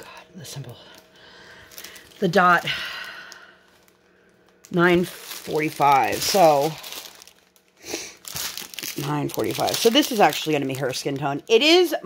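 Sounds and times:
plastic bags crinkling: 0.7s - 12.0s.

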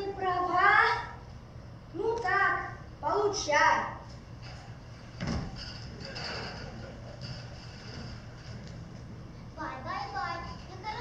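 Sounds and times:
faint stage noise: 0.0s - 11.0s.

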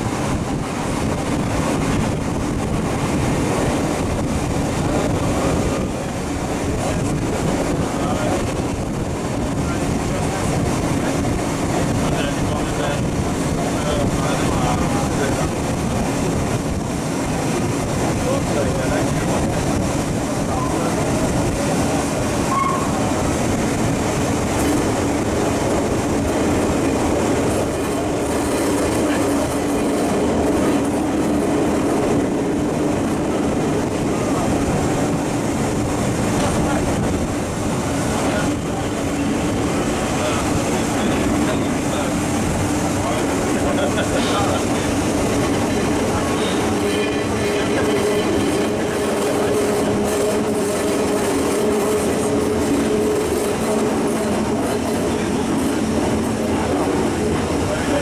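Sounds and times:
train wheels rumbling on rails: 0.0s - 58.0s.

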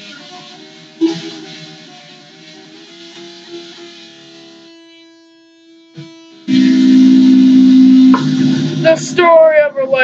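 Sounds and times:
electric guitar chord ringing: 6.5s - 10.0s.

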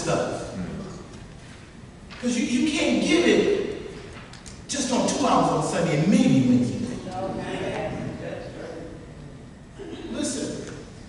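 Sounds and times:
man talking: 0.0s - 1.1s, 2.2s - 3.7s, 4.7s - 7.4s, 9.9s - 10.9s
talk in a large room: 0.0s - 11.0s.

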